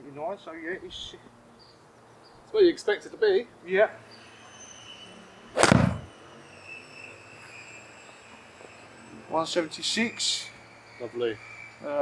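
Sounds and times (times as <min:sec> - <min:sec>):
golf club striking ball: 0:05.6 - 0:06.1.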